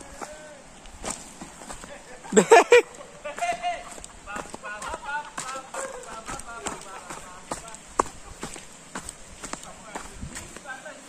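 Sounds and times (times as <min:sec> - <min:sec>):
footsteps on rocky trail: 0:00.0 - 0:10.9.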